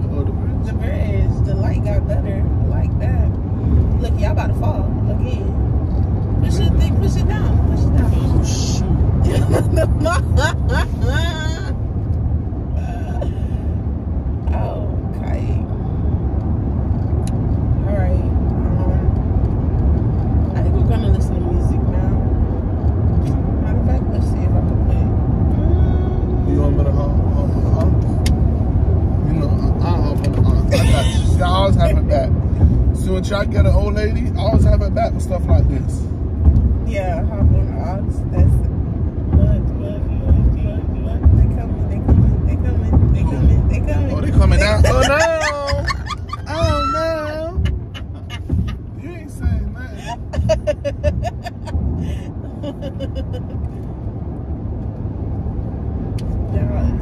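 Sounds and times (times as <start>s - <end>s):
car cabin road and engine rumble: 0.0s - 57.0s.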